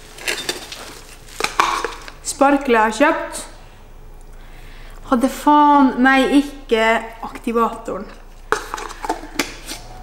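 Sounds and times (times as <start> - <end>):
metal lid scraping off: 8.5 - 10.0.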